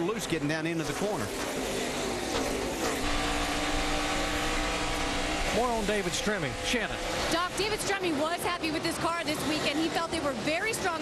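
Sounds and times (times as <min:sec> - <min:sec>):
in-car engine high note: 0:00.9 - 0:08.8.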